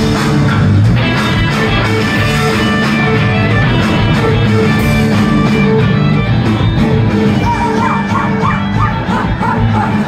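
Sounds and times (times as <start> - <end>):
electric guitars: 0.0 - 10.0
live rock band playing: 0.0 - 10.0.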